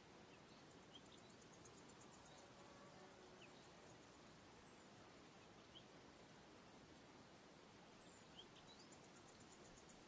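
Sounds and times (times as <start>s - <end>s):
faint insect buzz: 0.0s - 10.0s.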